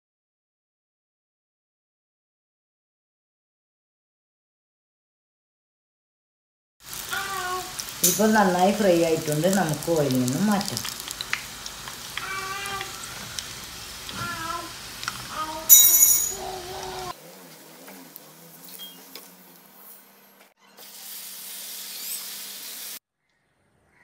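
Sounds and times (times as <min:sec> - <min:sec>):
hot oil sizzling: 0:06.8 - 0:20.2, 0:20.8 - 0:23.0.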